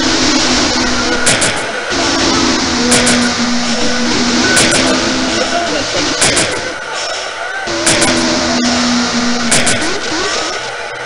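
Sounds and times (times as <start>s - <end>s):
dense noise wash: 0.0s - 11.0s
sharp cracks: 1.2s - 2.0s, 2.7s - 5.5s, 6.1s - 6.8s, 7.7s - 8.3s, 9.4s - 10.1s
low held tone: 1.9s - 6.2s, 7.7s - 10.6s.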